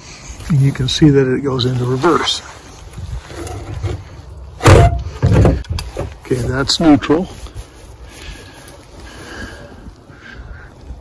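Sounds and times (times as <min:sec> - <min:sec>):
low rumble of handling: 0:01.6 - 0:11.0.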